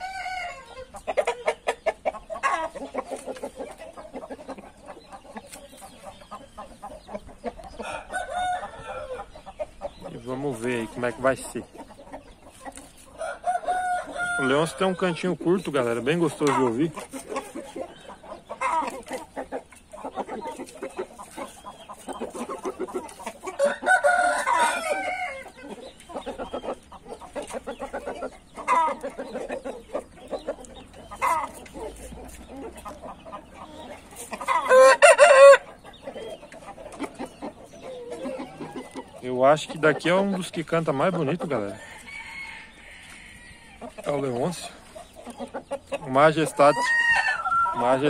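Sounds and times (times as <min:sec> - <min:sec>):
rooster crowing: 0:00.0 - 0:00.7, 0:07.8 - 0:09.2, 0:13.2 - 0:15.0, 0:23.6 - 0:25.4, 0:34.6 - 0:35.7, 0:41.7 - 0:43.8, 0:46.6 - 0:47.9.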